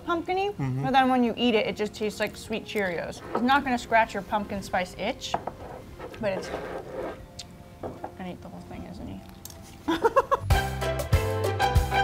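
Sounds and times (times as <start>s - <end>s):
woman talking: 0.0s - 5.4s, 6.2s - 6.6s.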